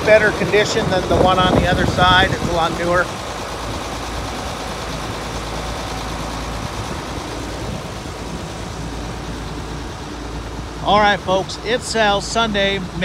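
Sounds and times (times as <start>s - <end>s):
diesel engine idling: 0.0s - 13.0s.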